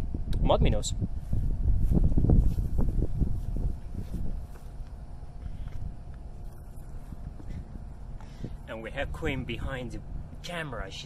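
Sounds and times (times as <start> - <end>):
wind buffeting microphone: 0.0 - 10.4.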